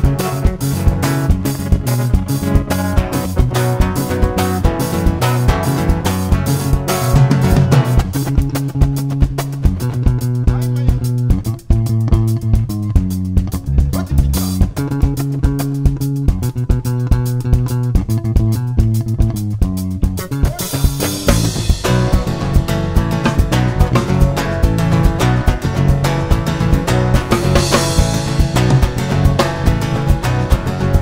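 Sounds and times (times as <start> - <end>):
strummed acoustic guitar: 0.0 - 11.2, 20.3 - 31.0
drum kit beat: 0.0 - 31.0
electric bass line: 0.0 - 31.0.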